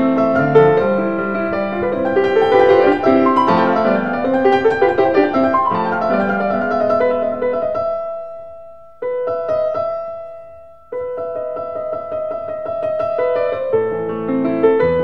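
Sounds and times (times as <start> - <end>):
piano music: 0.0 - 15.0.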